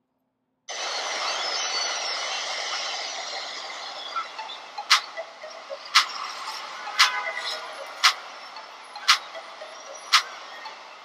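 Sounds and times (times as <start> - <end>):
clock-like ticking: 4.2 - 11.0.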